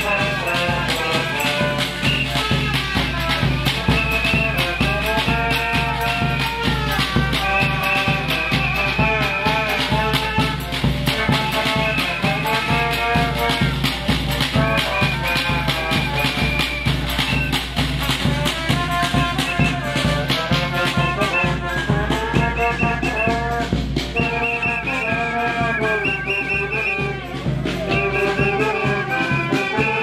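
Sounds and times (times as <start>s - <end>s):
brass band playing lively tune: 0.0s - 30.0s
steady drum beat: 0.0s - 30.0s.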